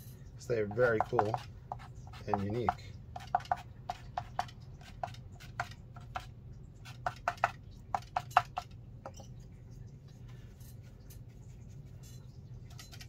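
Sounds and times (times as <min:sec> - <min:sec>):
tool tapping on paper: 0:00.7 - 0:06.2.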